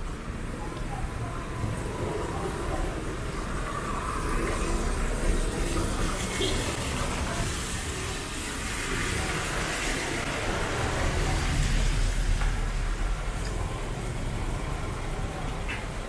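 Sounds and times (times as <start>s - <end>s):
tyres hissing on wet asphalt: 0.0s - 16.0s
vehicles passing on wet road: 0.0s - 16.0s.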